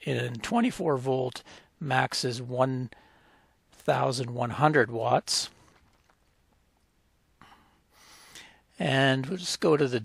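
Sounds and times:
man speaking: 0:00.0 - 0:03.0, 0:03.8 - 0:05.6, 0:08.8 - 0:10.0
man breathing in: 0:03.0 - 0:03.6, 0:07.4 - 0:08.7.

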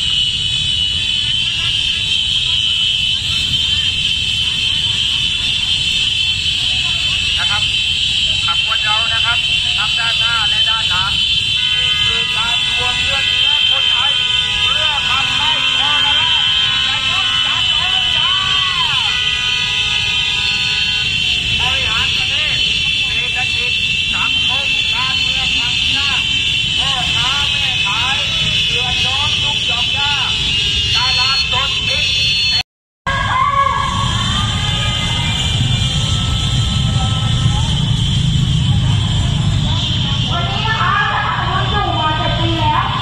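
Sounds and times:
motorcycle engines rumbling: 0:00.0 - 0:43.0
vehicle horns: 0:00.0 - 0:43.0
people shouting: 0:12.1 - 0:21.0, 0:33.1 - 0:37.8
shrill high-pitched din: 0:12.2 - 0:21.0, 0:30.0 - 0:43.0.

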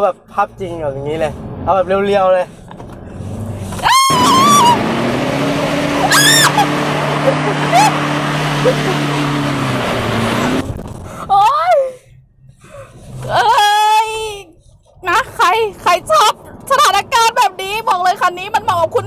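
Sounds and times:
engine drone: 0:00.2 - 0:11.4
people shrieking: 0:03.8 - 0:04.9, 0:06.0 - 0:08.1
person shouting: 0:06.0 - 0:06.7.

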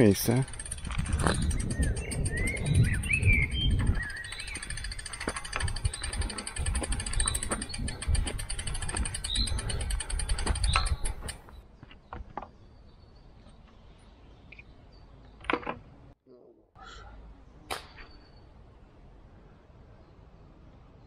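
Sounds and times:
small birds chirping: 0:00.9 - 0:15.5.

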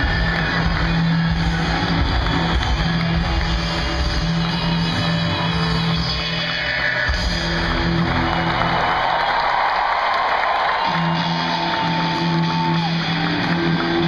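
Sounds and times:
live rock band playing: 0:00.0 - 0:08.8.

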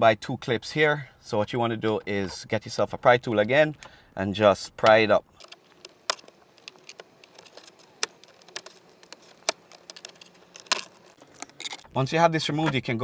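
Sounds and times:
plastic clips clicking: 0:04.8 - 0:12.0
plastic creaking: 0:04.8 - 0:13.0.

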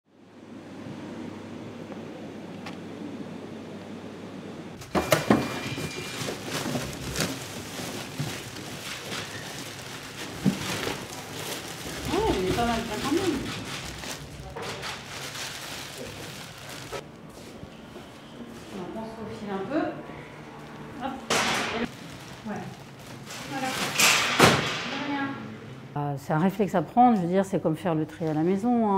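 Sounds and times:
handling sounds: 0:04.8 - 0:17.6.

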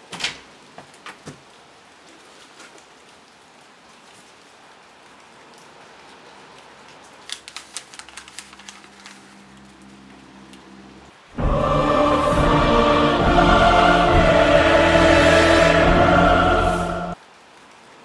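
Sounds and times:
paper envelope crackling: 0:07.0 - 0:10.7.

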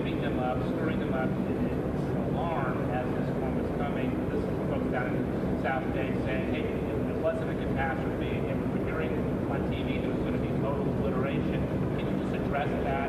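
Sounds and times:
engine drone: 0:00.0 - 0:13.0.

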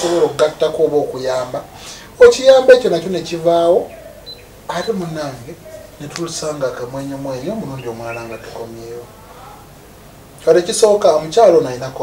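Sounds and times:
person speaking: 0:00.0 - 0:04.0, 0:04.7 - 0:09.2.

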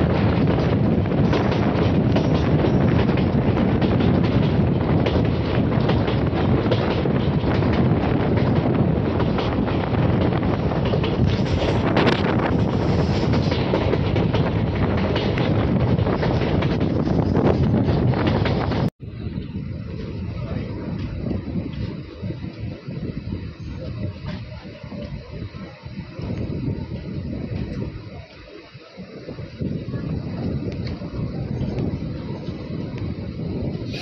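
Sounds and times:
train rumble: 0:00.0 - 0:34.0
wind buffeting microphone: 0:00.0 - 0:34.0.

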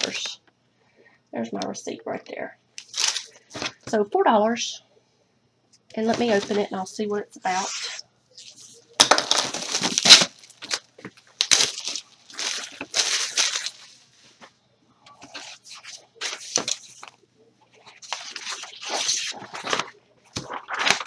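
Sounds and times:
plastic wrapping tearing and crinkling: 0:02.8 - 0:03.3, 0:07.6 - 0:14.0, 0:17.8 - 0:21.0.

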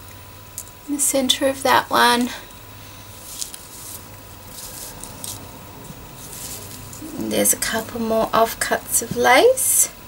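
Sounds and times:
faint steady hum: 0:00.0 - 0:10.0
fabric banner rustling: 0:02.8 - 0:07.9.

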